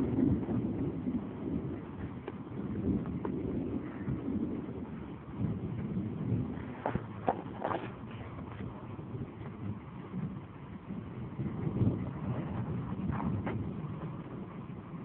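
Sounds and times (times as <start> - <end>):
distant thunder rumbling: 0.0 - 15.0.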